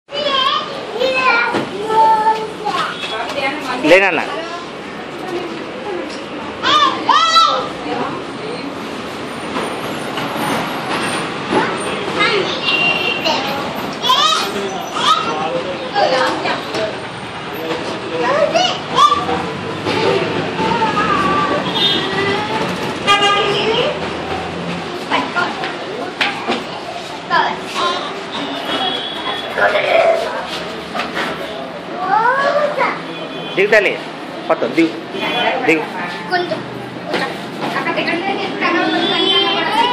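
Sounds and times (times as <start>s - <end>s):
murmur of voices: 0.1s - 39.9s
steady background noise: 0.1s - 39.9s.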